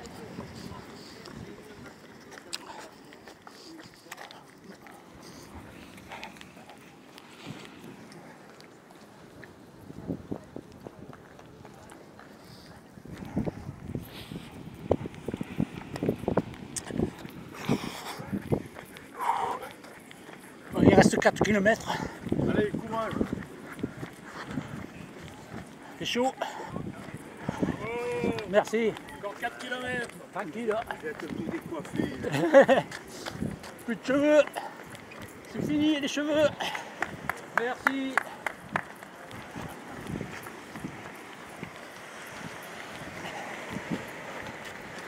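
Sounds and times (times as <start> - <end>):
faint indistinct voices: 0.0 - 20.8, 21.8 - 35.6, 38.2 - 45.0
running footsteps on asphalt: 0.0 - 45.0.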